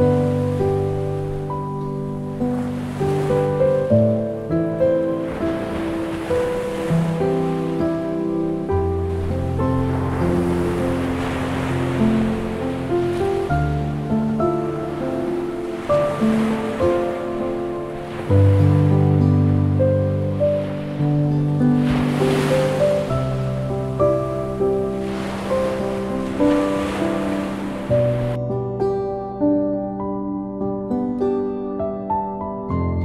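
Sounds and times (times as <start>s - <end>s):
surf washing onto beach: 0.0s - 28.4s
calm music with held chords: 0.0s - 33.0s.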